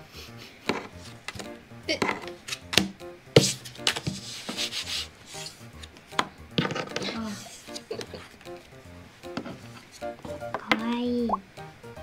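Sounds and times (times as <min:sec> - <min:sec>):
card taps: 0:00.7 - 0:04.6
cards sliding on wooden table: 0:00.7 - 0:10.4.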